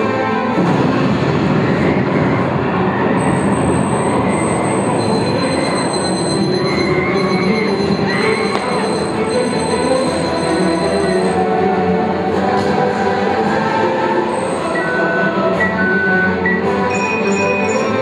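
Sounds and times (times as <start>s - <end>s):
high whistling tones: 1.6s - 11.5s, 13.2s - 18.0s.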